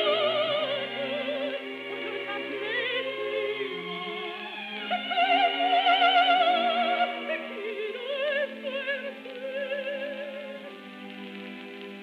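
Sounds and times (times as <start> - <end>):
operatic music on gramophone: 0.0 - 12.0.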